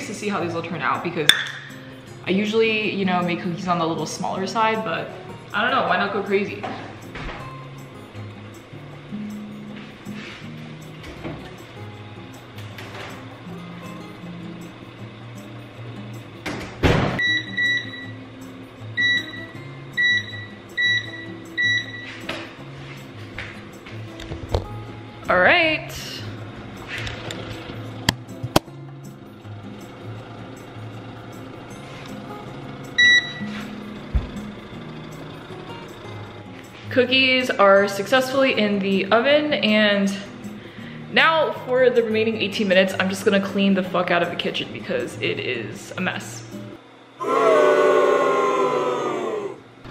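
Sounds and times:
background music: 0.0s - 49.9s
oven control panel beeps: 17.2s - 18.2s, 19.0s - 22.2s, 33.0s - 33.6s.

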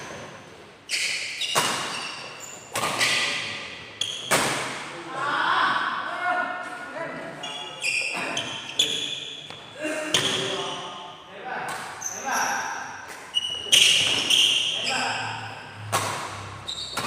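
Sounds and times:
rackets hitting shuttlecock: 1.0s - 4.9s, 15.8s - 17.0s.

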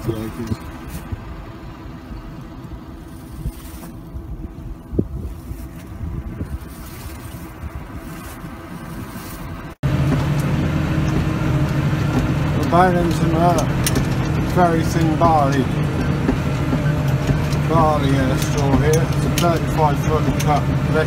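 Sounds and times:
tractor engine running: 0.0s - 21.0s
wind buffeting microphone: 0.0s - 21.0s.

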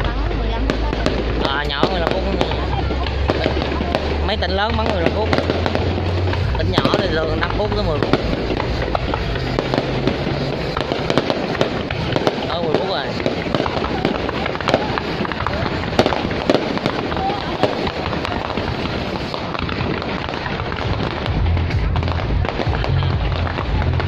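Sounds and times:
fireworks bursting: 0.0s - 24.0s
low rumble: 0.0s - 24.0s.

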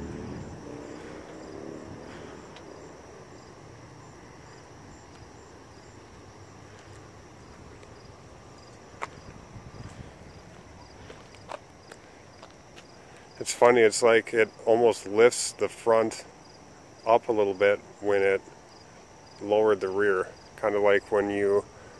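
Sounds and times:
low steady hum: 0.0s - 15.7s
insects chirping: 0.0s - 21.9s.

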